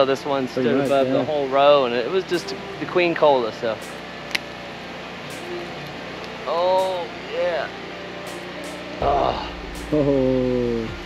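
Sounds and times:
sharp click: 0:03.8 - 0:04.5, 0:05.3 - 0:07.0, 0:08.3 - 0:08.8
man humming: 0:09.0 - 0:11.0.

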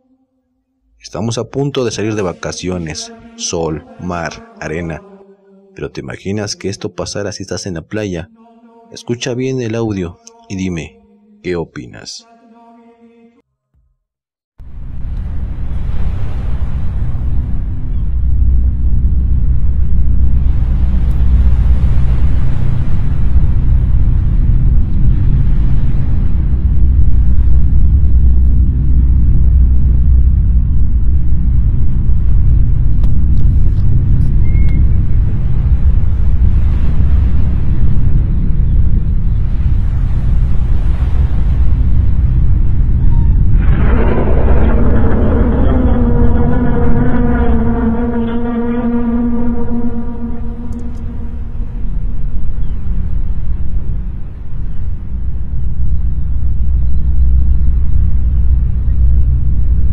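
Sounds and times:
deep rumbling drone: 0:14.6 - 0:59.9.

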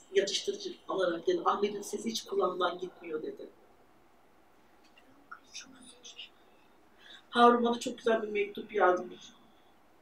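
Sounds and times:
person whispering: 0:05.1 - 0:06.4.

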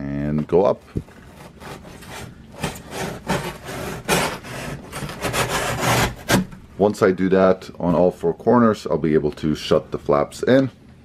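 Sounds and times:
knife slicing cardboard: 0:01.2 - 0:06.5.

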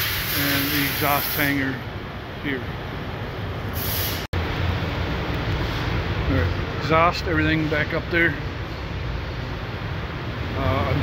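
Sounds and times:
workshop background rumble and hiss: 0:00.0 - 0:11.0.

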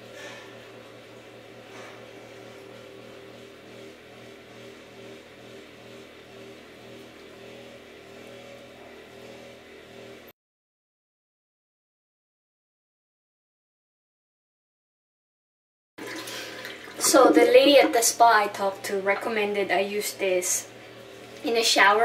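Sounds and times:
low machine hum: 0:00.0 - 0:10.3, 0:16.0 - 0:22.0.

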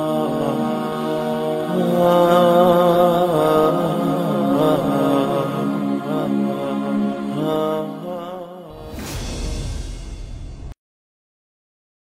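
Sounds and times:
chant-like singing voice: 0:00.0 - 0:09.9.

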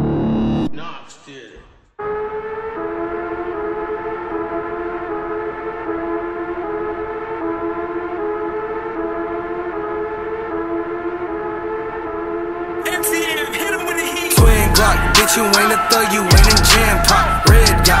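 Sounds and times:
siren-like synth drone: 0:00.0 - 0:00.8, 0:02.0 - 0:18.0.

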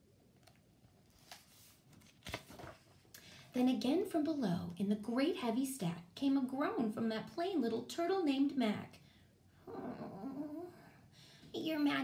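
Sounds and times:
paper rustling: 0:01.0 - 0:03.1
page flapping: 0:01.1 - 0:03.0.

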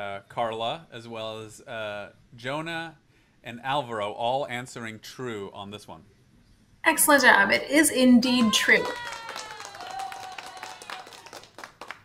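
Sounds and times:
light clapping: 0:08.8 - 0:12.0.

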